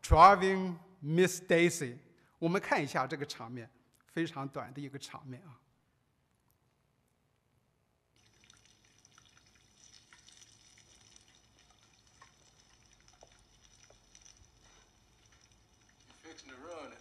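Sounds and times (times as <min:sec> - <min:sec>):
chicken sizzling in oil: 0:08.2 - 0:17.0.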